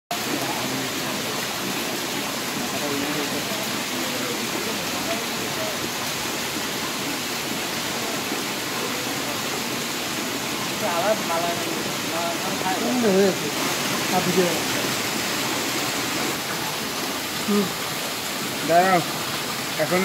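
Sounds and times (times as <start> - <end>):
steady rushing hiss: 10.2 - 20.0.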